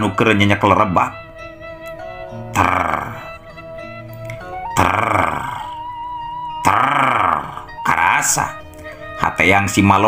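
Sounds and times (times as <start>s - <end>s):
background music with held tones: 0.0s - 10.0s
man growling: 2.3s - 3.6s, 4.6s - 6.0s, 6.6s - 7.8s.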